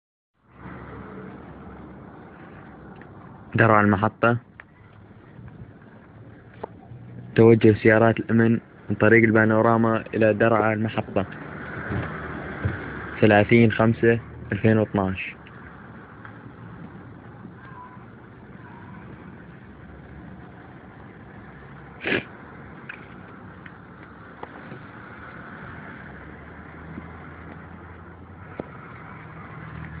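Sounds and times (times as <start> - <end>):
cars passing: 0.4 - 30.0
traffic rumble: 0.4 - 30.0.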